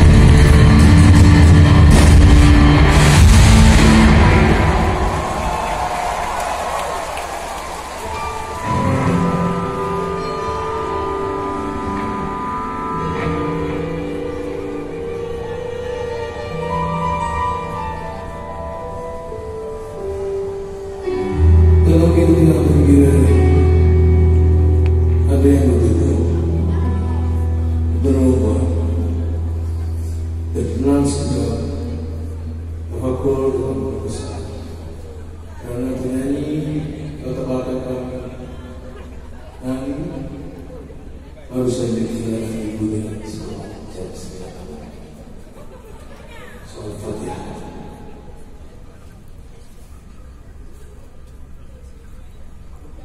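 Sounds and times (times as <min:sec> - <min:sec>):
keyboard chords: 0:00.0 - 0:06.5, 0:07.7 - 0:46.0
live band over loudspeakers: 0:00.0 - 0:53.0.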